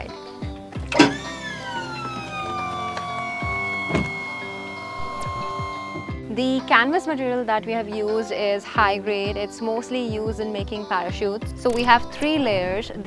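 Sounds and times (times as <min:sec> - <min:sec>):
background music with a beat: 0:00.1 - 0:06.4
electric pump motor whine: 0:00.7 - 0:06.3.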